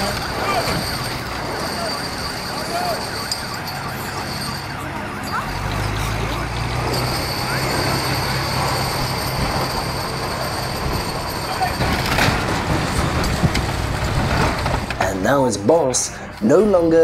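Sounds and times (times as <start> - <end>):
diesel engine running: 0.0 - 17.0.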